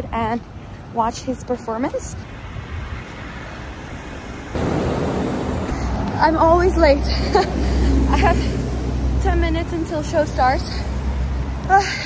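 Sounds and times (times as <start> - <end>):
street traffic noise: 0.0 - 12.0
loud steady rushing noise: 2.4 - 9.0.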